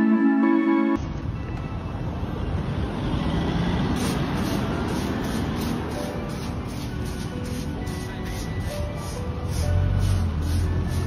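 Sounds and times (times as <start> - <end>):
background music: 0.0 - 1.1, 4.9 - 11.0
street traffic rumble: 1.0 - 11.0
stiff broom sweeping asphalt: 3.9 - 11.0.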